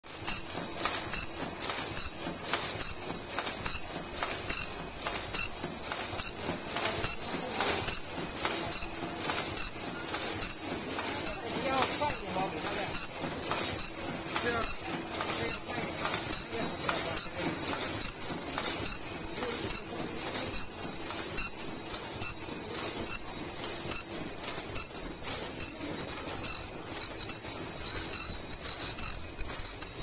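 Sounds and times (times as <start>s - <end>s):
machine clattering: 0.1s - 30.0s.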